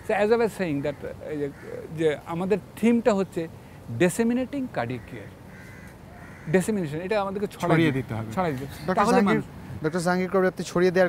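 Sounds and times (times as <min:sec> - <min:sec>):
crow cawing faintly: 0:00.5 - 0:02.4, 0:04.8 - 0:06.9
man's voice: 0:06.8 - 0:10.2.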